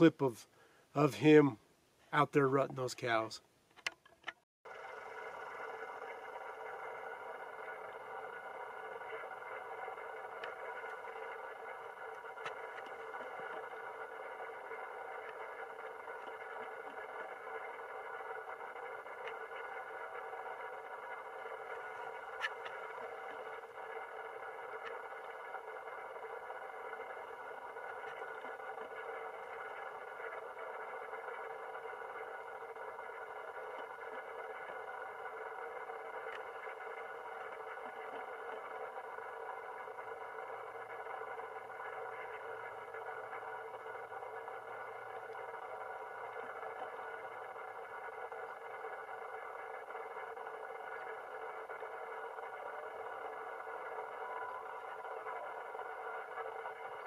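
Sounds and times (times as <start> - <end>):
faint clicks: 3.7 - 57.0
steady hum of held tones: 4.7 - 57.0.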